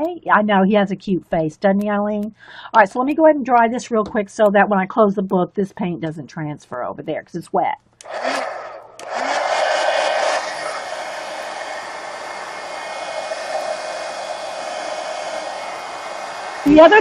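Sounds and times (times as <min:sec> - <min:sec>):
heat gun blowing: 0:08.0 - 0:17.0.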